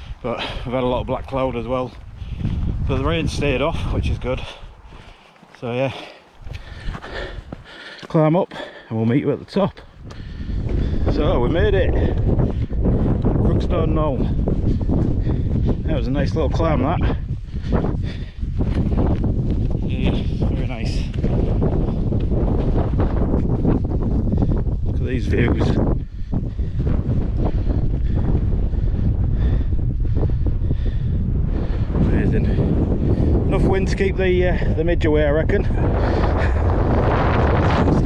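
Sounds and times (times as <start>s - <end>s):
wind rumble on microphone: 0.0s - 5.3s, 6.3s - 7.9s, 9.4s - 38.0s
footsteps on stony path: 0.4s - 28.8s.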